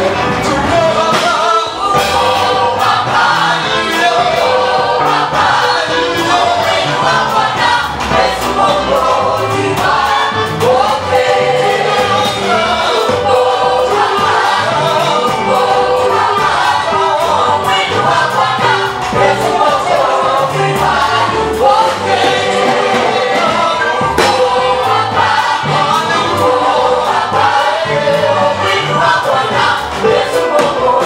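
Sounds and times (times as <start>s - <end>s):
group singing gospel song: 0.0s - 31.0s
live band accompaniment: 0.0s - 31.0s.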